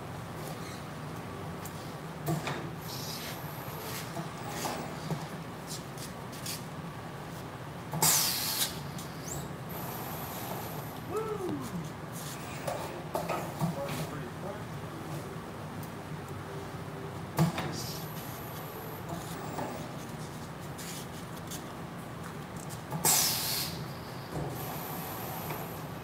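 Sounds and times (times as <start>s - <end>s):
loud hiss: 8.0s - 8.8s, 23.0s - 23.9s.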